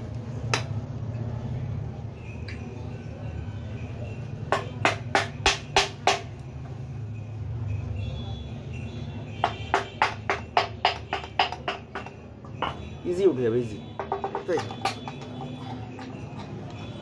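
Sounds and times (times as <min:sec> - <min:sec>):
sharp knocks through wooden stick: 0:09.4 - 0:12.8, 0:14.0 - 0:15.4.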